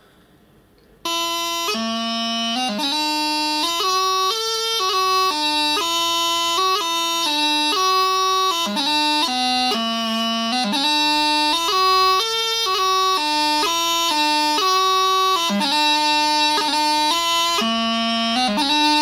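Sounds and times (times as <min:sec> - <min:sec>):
bagpipe practice chanter playing: 0:01.0 - 0:19.0.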